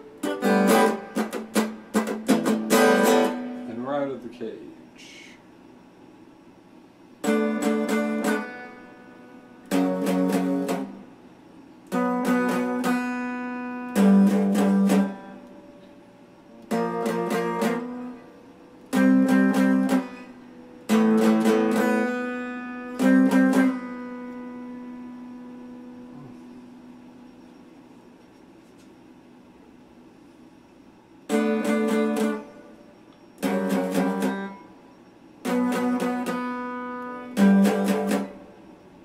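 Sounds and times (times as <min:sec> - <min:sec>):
electric guitar strumming chords: 0:00.0 - 0:04.3, 0:07.2 - 0:11.2, 0:11.8 - 0:27.4, 0:31.2 - 0:39.0.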